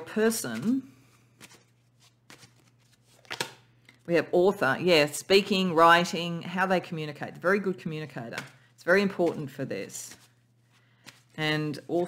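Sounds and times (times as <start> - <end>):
playing cards clicking and sliding: 0.5 - 3.6, 9.2 - 11.4.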